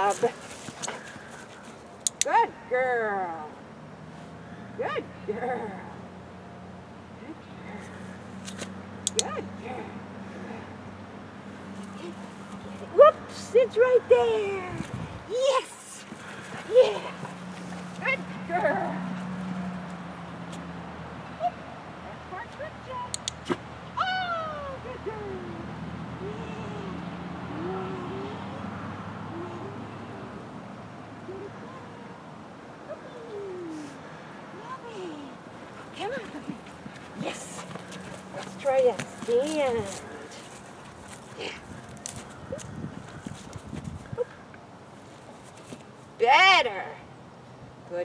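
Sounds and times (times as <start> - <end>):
paws and boots on dry grass: 0.0 - 2.0, 35.6 - 44.2.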